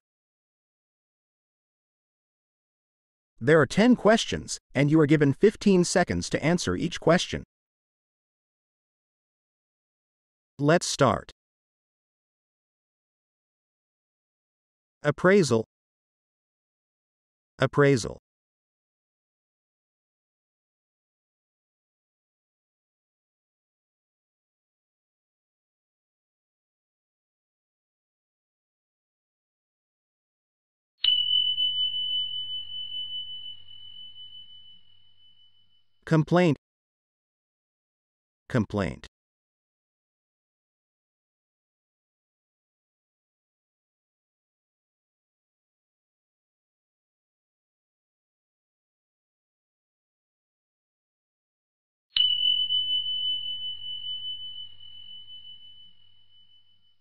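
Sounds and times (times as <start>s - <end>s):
bell-like ding: 31.0s - 35.7s, 52.2s - 57.0s.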